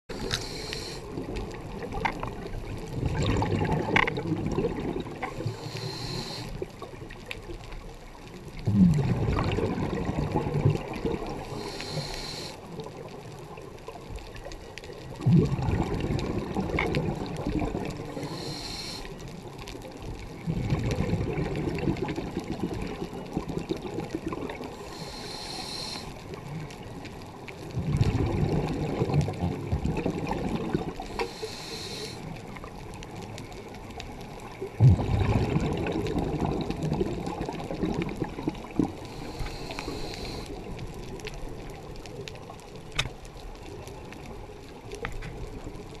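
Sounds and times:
regulator hiss on inhale: 0.1s - 1.3s, 5.2s - 6.8s, 11.4s - 12.8s, 18.0s - 19.4s, 24.6s - 26.4s, 31.0s - 32.5s, 38.9s - 40.8s
exhaled bubbles underwater: 0.1s - 42.8s.

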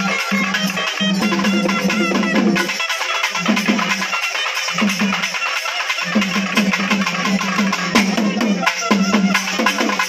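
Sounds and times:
fast drumming: 0.0s - 10.0s.

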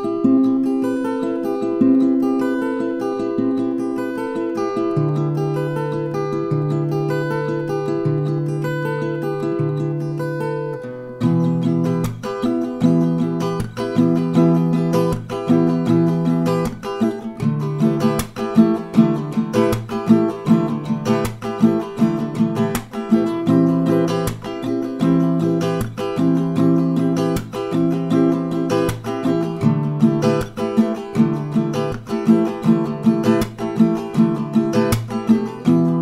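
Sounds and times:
acoustic guitar playing chords: 0.0s - 36.0s.

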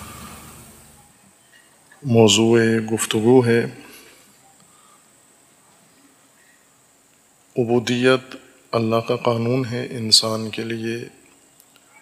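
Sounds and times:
faint steady hiss: 0.0s - 12.0s.

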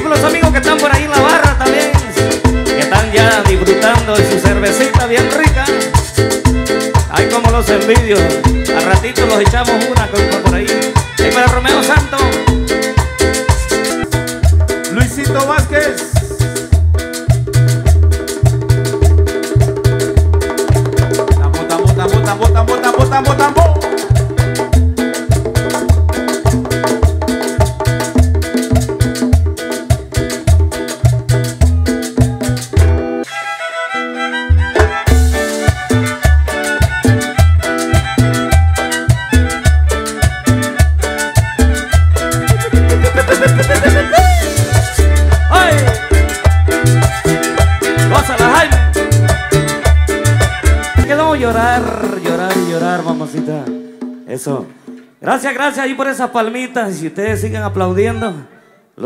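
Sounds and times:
dance band playing: 0.0s - 55.3s
fiddle melody: 0.6s - 14.8s, 33.0s - 52.0s.

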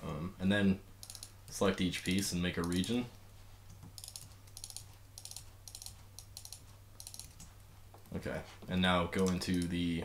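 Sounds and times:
keyboard and mouse clicks: 2.0s - 2.9s, 3.7s - 8.2s.

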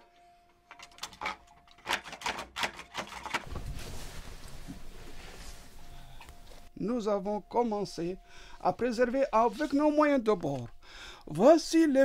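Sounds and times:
wooden lock clacking: 0.7s - 3.5s.

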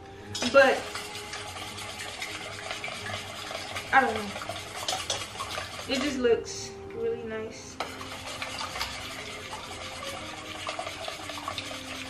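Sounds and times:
whisk beating in metal bowl: 0.4s - 6.4s, 7.8s - 12.0s.

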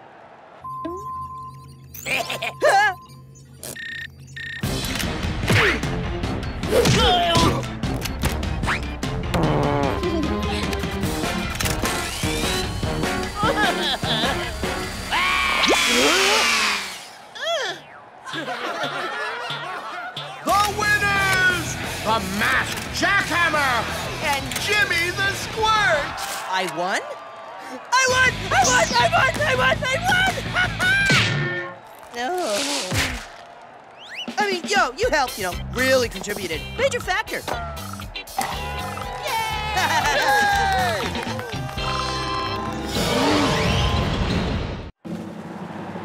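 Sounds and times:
electronic beep: 0.7s - 4.8s
loud cartoon music: 5.2s - 17.0s, 36.6s - 44.7s
snickering laughs: 13.4s - 14.6s, 18.3s - 20.4s, 39.6s - 40.6s.

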